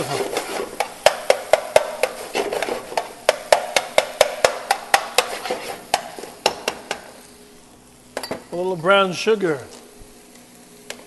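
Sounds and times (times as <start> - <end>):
spatula scraping a skillet: 0.0 - 7.1
faint sizzle: 0.0 - 11.0.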